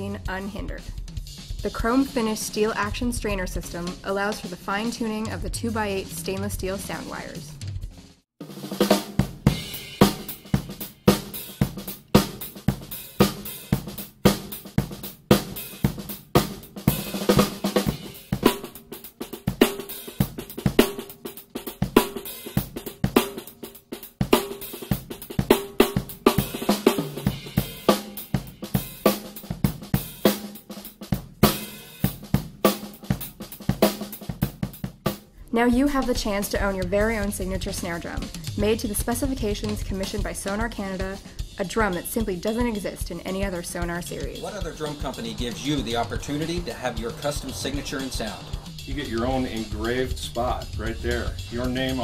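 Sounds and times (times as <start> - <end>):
bass drum: 0.0 - 23.5, 24.1 - 52.0
snare drum: 6.9 - 52.0
cymbals: 8.5 - 36.3, 37.0 - 52.0
hi-hat: 37.0 - 52.0.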